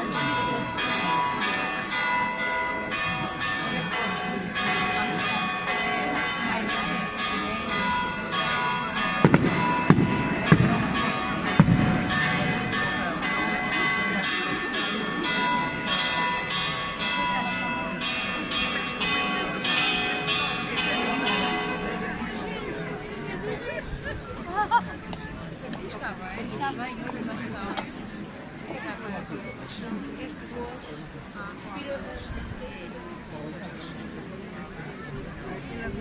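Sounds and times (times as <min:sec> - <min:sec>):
bells ringing: 0:00.0 - 0:28.0
crowd voices: 0:00.0 - 0:36.0
firework bangs: 0:09.2 - 0:10.9.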